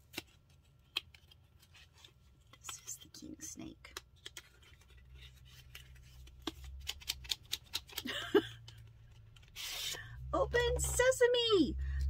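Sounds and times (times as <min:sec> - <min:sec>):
packaging clicks and rubbing: 0:00.0 - 0:10.1
short scrape: 0:09.6 - 0:10.0.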